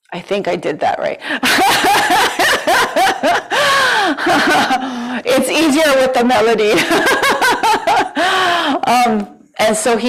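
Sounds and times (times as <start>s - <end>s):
woman laughing: 1.4s - 5.1s, 6.7s - 8.4s.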